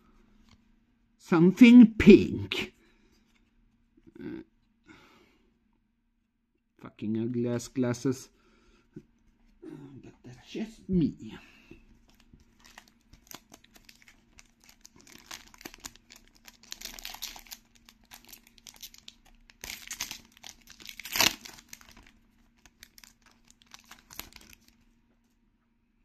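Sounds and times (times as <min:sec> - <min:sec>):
plastic pack crinkling: 0:11.9 - 0:24.9
pack tearing open: 0:12.1 - 0:24.8.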